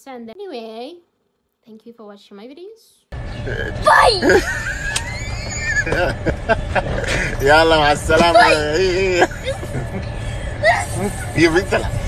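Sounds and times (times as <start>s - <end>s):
low background rumble: 3.2s - 12.0s
thin rising whine: 3.2s - 12.0s
girl's wavering voice: 3.8s - 4.4s, 10.6s - 11.1s.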